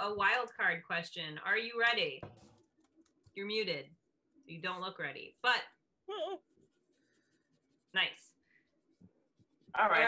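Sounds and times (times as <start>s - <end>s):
person laughing: 6.1s - 6.5s.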